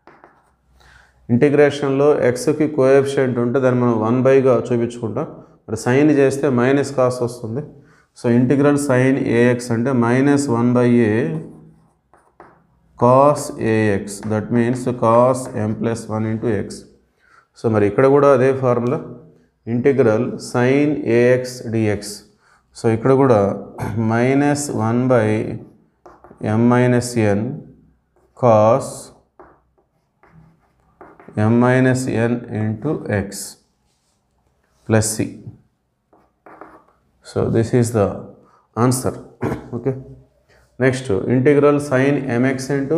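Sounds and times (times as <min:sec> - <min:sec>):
chalk writing on blackboard: 0:00.0 - 0:00.6, 0:11.4 - 0:12.8, 0:14.1 - 0:15.8, 0:26.0 - 0:26.5, 0:28.1 - 0:31.5, 0:36.1 - 0:37.1
man speaking: 0:13.0 - 0:16.9, 0:17.6 - 0:25.7, 0:28.4 - 0:29.2, 0:31.2 - 0:33.6, 0:34.8 - 0:35.6, 0:36.7 - 0:40.2, 0:40.8 - 0:42.9.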